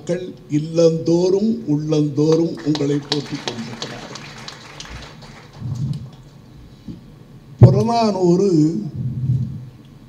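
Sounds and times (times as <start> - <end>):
microphone crackles: 5.6 - 7.0, 8.9 - 9.8.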